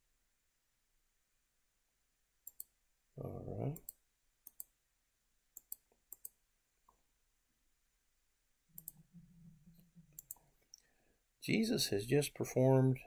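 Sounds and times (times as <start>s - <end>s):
computer mouse clicks: 2.4s - 2.7s, 3.7s - 4.7s, 5.6s - 7.0s, 8.8s - 9.1s, 10.1s - 10.9s.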